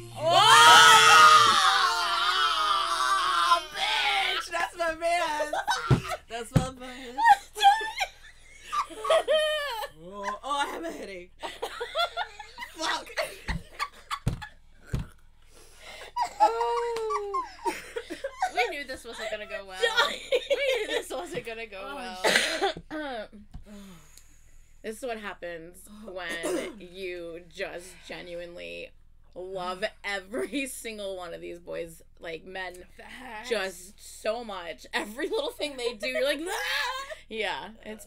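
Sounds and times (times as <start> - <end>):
women screaming and squealing: 0.0 - 6.3, 7.0 - 10.4, 16.2 - 21.0
woman squealing with excitement: 0.2 - 4.5, 7.2 - 8.1, 16.2 - 17.7
women laughing: 0.3 - 14.5, 15.9 - 22.7, 36.1 - 37.2.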